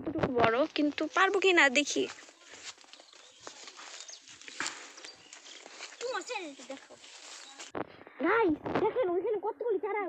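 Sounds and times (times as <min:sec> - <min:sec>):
faint outdoor rustling: 0:00.0 - 0:10.0.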